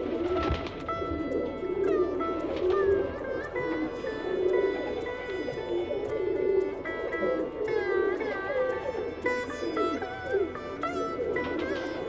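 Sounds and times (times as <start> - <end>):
pigeons cooing: 0.0 - 12.0
plucked string music: 0.0 - 12.0.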